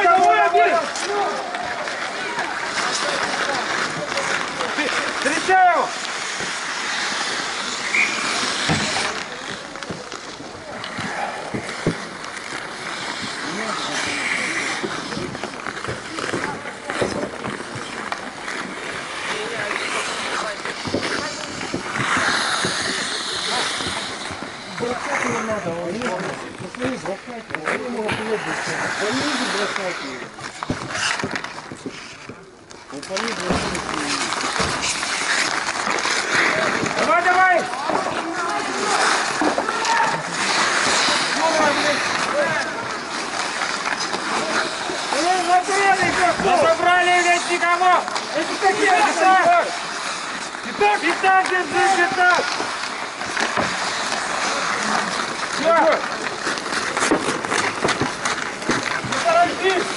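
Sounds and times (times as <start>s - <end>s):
players shouting: 0.0s - 9.8s, 35.3s - 59.9s
hockey sticks and puck clacking: 0.0s - 59.9s
skate blades scraping ice: 0.0s - 59.9s.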